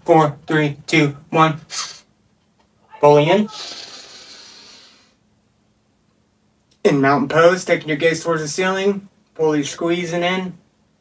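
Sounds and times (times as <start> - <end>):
man's deep inhale: 3.6 - 5.2.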